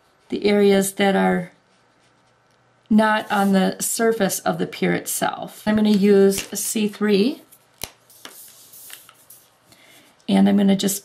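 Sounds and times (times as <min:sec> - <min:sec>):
paper rustling: 0:08.1 - 0:09.5.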